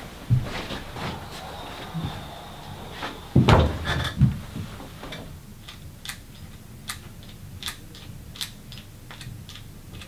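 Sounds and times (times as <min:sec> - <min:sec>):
office chair thump: 0:03.0 - 0:04.7.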